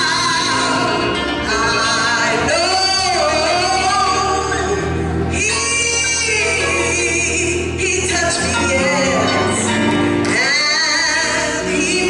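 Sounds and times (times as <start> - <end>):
woman singing gospel song: 0.0 - 12.0.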